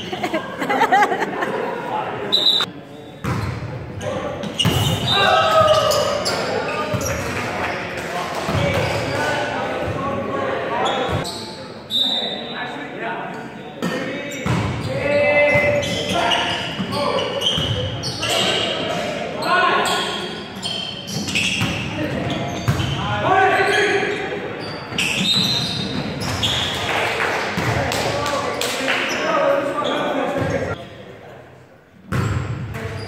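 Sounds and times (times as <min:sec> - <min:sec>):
players shouting: 0:04.9 - 0:07.2.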